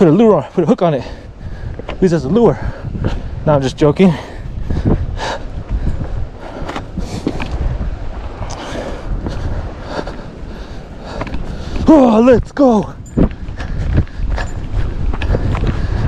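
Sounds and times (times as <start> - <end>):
wind rumble on microphone: 0.0 - 16.0
footsteps on loose rocks: 1.5 - 7.8, 11.0 - 16.0.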